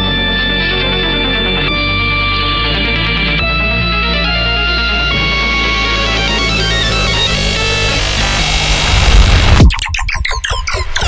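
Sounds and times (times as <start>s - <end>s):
heavy deep bass: 0.0s - 9.7s
dense noisy synth: 4.6s - 11.0s
glitchy stutter of synth stabs: 5.8s - 11.0s.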